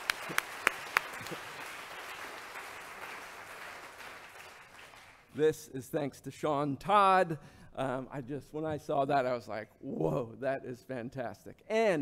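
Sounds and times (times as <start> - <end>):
audience applauding: 0.0 - 5.3.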